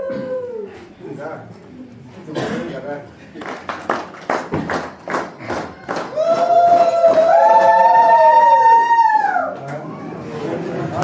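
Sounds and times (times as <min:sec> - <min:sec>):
hand claps: 0:03.4 - 0:07.7.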